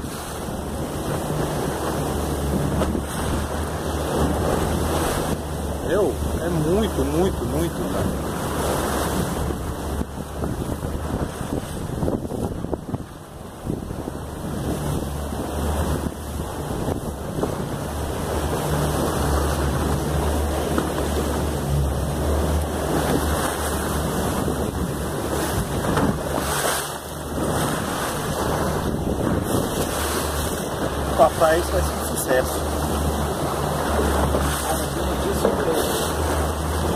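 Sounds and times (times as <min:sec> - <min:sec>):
wind rushing over microphone: 0:00.0 - 0:36.9.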